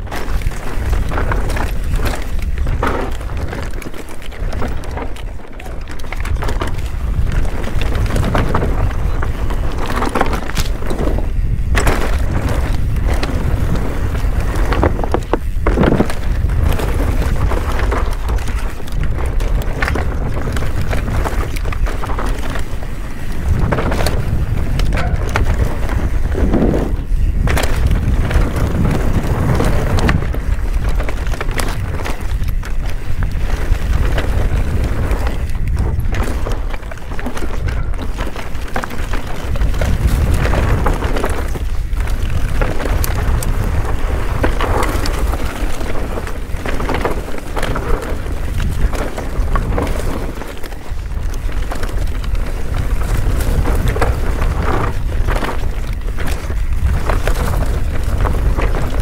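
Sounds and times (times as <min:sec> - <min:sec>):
bike clattering over roots: 0:00.0 - 0:59.0
tyres rumbling on dirt: 0:00.0 - 0:59.0
wind buffeting microphone: 0:00.0 - 0:59.0.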